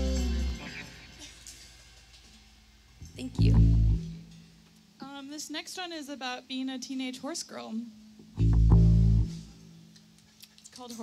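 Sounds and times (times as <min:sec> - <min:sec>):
amplifier hum: 0:03.0 - 0:04.4, 0:08.2 - 0:09.7
low electric bass note: 0:03.1 - 0:04.2, 0:08.4 - 0:09.5.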